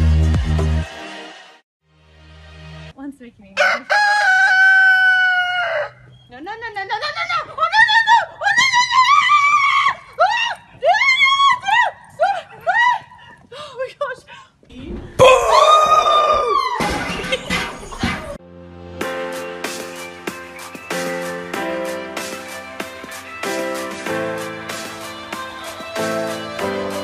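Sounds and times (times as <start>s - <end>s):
rooster crowing: 3.6s - 6.1s.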